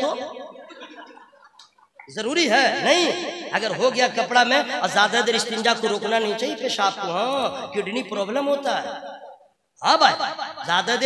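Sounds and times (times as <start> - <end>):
man speaking over public address: 0.0 - 0.5, 2.1 - 9.1, 9.8 - 11.0.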